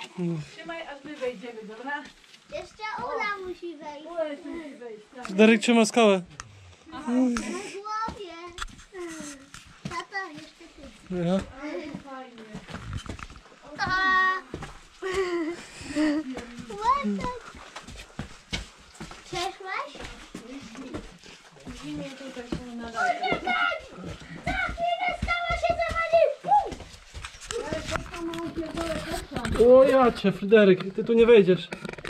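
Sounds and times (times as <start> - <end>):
children calling and talking: 2.4 - 5.7, 6.9 - 12.8, 13.5 - 29.6
clicks and scuffs of movement: 6.3 - 14.8, 26.7 - 31.0.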